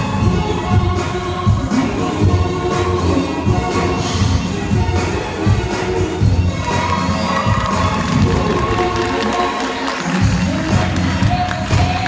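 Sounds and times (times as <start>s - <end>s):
loud backing music: 0.0s - 12.0s.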